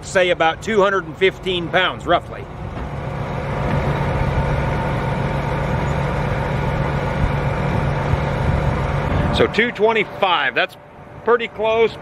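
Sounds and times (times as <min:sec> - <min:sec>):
tractor diesel engine idling: 0:00.0 - 0:12.0.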